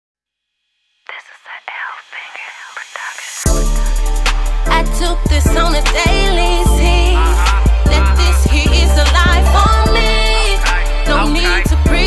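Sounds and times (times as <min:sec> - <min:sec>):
whispered voice: 0:01.1 - 0:03.4
hip hop beat with heavy bass: 0:01.7 - 0:12.0.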